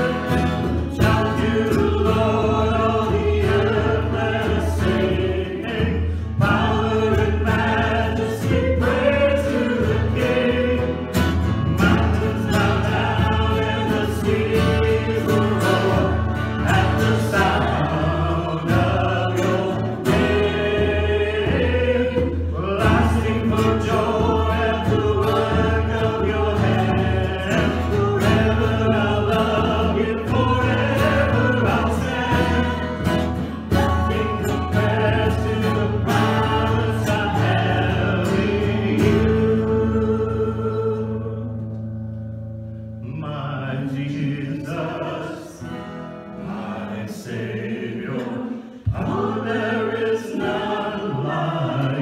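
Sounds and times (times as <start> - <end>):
men and women singing together: 0.0 - 41.9, 43.0 - 52.0
strummed acoustic guitar: 0.0 - 52.0.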